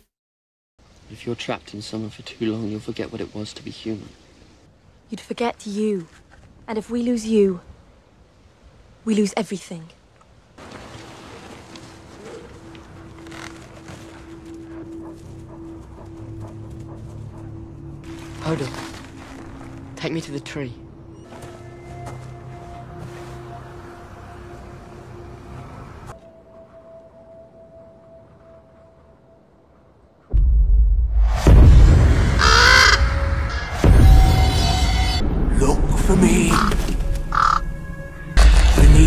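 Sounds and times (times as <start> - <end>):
low rumbling film score: 0.8 - 39.0
low musical drone: 12.4 - 30.0
raven cawing: 32.3 - 35.1, 36.4 - 37.8.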